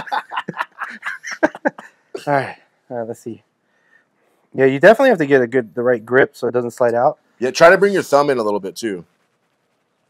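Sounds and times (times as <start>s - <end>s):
men laughing: 0.0s - 2.5s.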